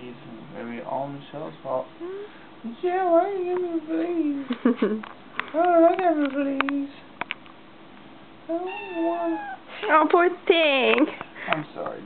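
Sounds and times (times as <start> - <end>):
kitten meowing: 8.6 - 9.6.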